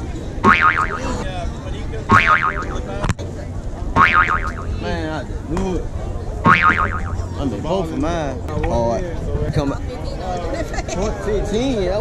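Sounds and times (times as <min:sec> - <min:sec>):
crowd noise: 0:00.0 - 0:12.0
electronic warbling tone: 0:00.4 - 0:01.2, 0:02.1 - 0:02.8, 0:04.0 - 0:04.8, 0:06.5 - 0:07.3.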